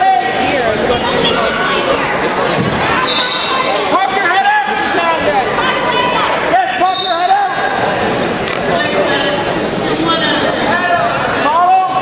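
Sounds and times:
echoing hall noise: 0.0 - 12.0.

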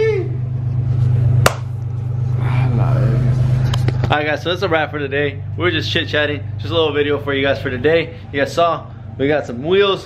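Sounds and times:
steady low rumble: 0.0 - 10.0
hand slap: 1.4 - 1.7.

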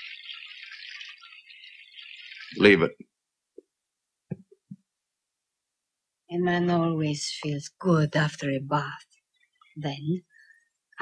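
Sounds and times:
water pouring into bath: 0.0 - 3.0.

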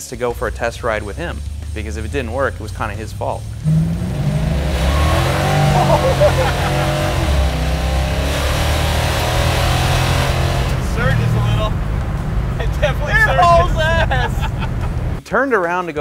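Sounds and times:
car engine cruising: 0.0 - 15.2
men laughing: 4.9 - 7.6, 12.6 - 15.2.

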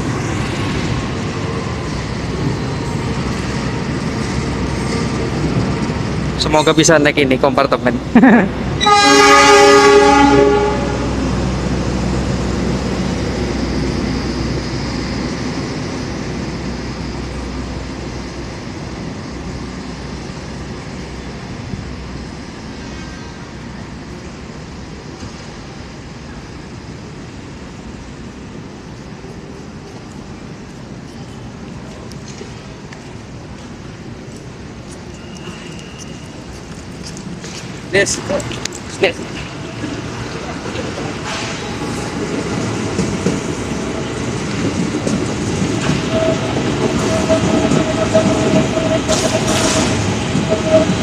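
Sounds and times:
passenger train rolling past: 0.0 - 51.0
train horn blast: 8.8 - 11.2.

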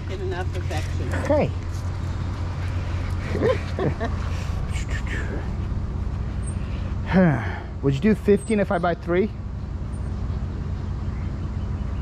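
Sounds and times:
machine running with low rumble: 0.0 - 12.0.

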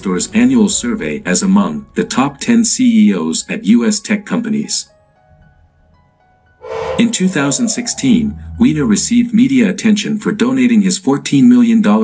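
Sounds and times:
soft background music: 0.0 - 9.7.

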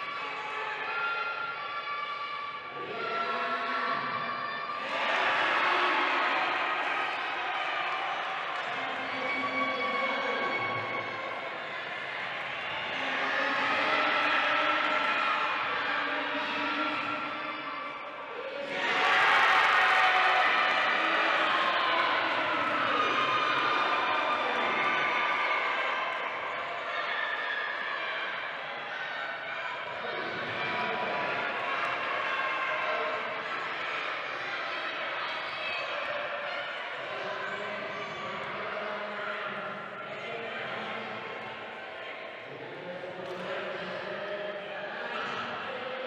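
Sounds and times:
crowd cheering: 0.0 - 46.0
echoing crowd noise: 0.0 - 46.0
players' voices: 0.0 - 46.0.

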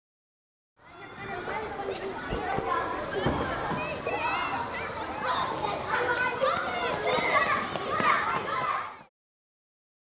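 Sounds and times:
children chattering: 0.8 - 9.1.

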